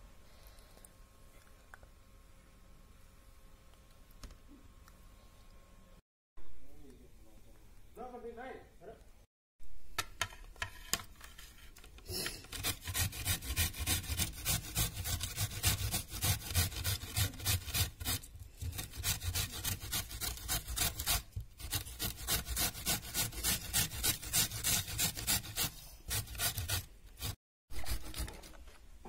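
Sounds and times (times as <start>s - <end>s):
grating on a metal grater: 12.2s - 28.7s.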